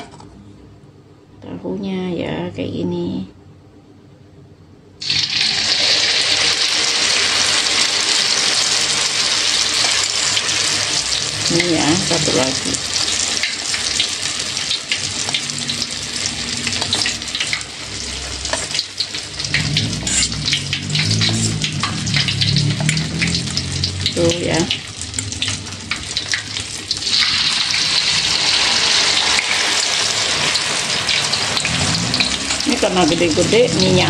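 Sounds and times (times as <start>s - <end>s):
food deep-frying in oil: 5.0s - 34.0s.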